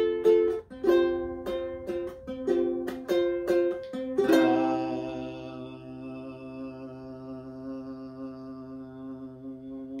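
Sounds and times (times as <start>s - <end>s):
ukulele chord ringing: 0.0s - 7.0s
man humming low note: 4.3s - 10.0s.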